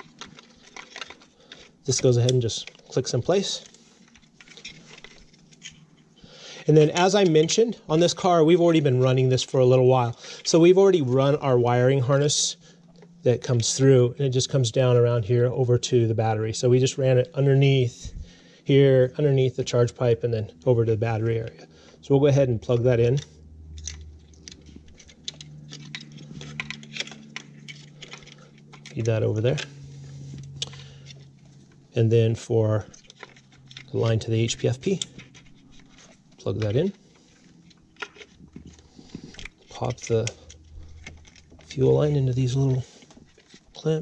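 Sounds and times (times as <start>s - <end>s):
clicks and rustles of hoses: 0.0s - 13.8s, 22.6s - 32.1s, 32.7s - 44.0s
steady low hum: 0.0s - 44.0s
plastic connector clicks and rattles: 23.8s - 29.7s.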